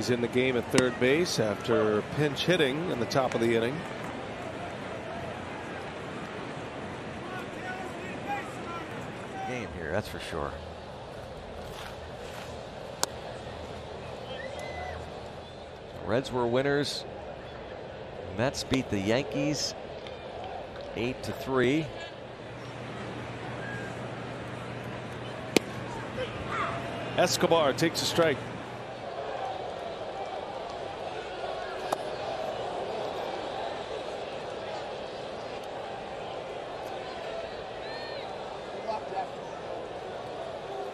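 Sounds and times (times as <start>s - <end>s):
crowd murmur: 0.0s - 9.8s, 19.1s - 40.9s
ball smacking into mitt: 25.5s - 25.8s.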